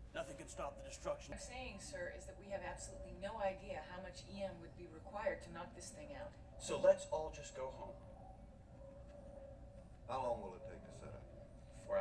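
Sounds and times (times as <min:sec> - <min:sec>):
faint hum with low rumble: 0:00.0 - 0:12.0.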